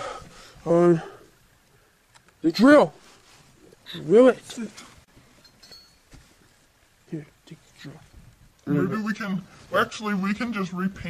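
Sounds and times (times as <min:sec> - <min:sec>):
light clicks: 0:01.6 - 0:02.4
faint handling noises: 0:03.0 - 0:08.6
faint high clink: 0:05.4 - 0:06.2.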